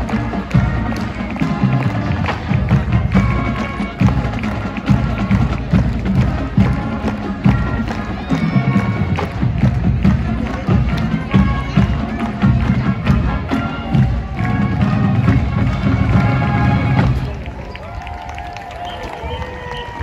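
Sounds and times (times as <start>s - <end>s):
marching band playing: 0.0s - 17.9s
crowd noise: 0.0s - 20.0s.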